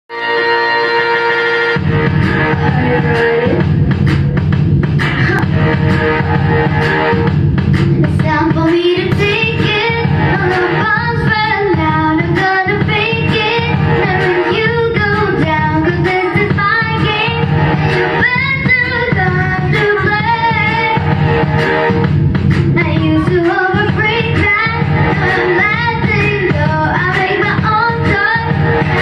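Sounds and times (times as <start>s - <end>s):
instrumental accompaniment: 0.1s - 29.0s
girl singing into microphone: 8.0s - 17.5s, 18.2s - 21.0s, 22.8s - 29.0s.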